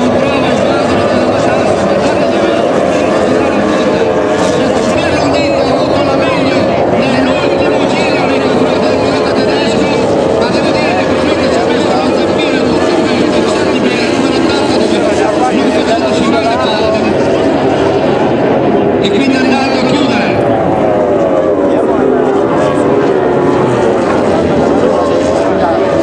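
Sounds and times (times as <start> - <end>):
powerboat engines whining: 0.0 - 26.0.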